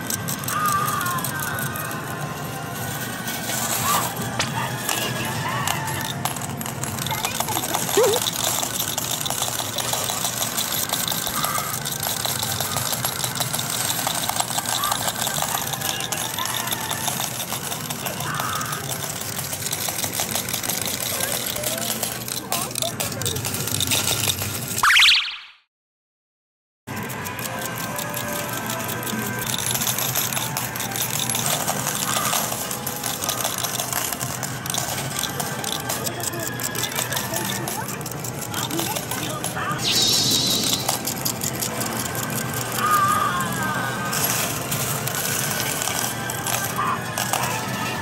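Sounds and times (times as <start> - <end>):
arcade machine music: 0.0 - 24.2, 24.8 - 25.5, 26.9 - 48.0
electronic game sounds: 24.8 - 25.6, 30.8 - 42.7.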